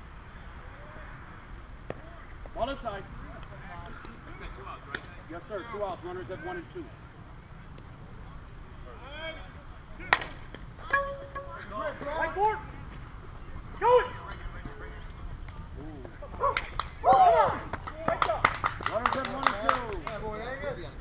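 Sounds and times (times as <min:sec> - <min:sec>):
players shouting: 0:08.8 - 0:15.0, 0:15.6 - 0:18.4
softball bat hitting ball: 0:10.1 - 0:12.1.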